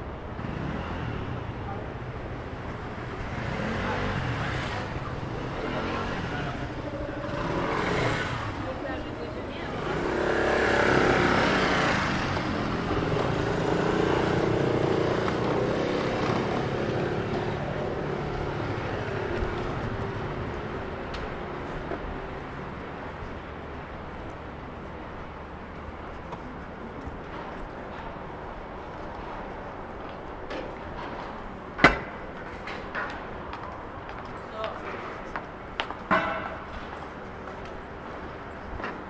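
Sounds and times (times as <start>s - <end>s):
cars passing: 0.0s - 39.0s
motor scooters passing: 0.1s - 35.6s.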